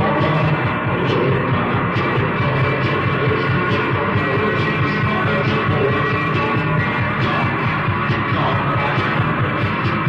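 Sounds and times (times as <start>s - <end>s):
rock band playing live: 0.0s - 10.0s
steady drum beat: 0.0s - 10.0s.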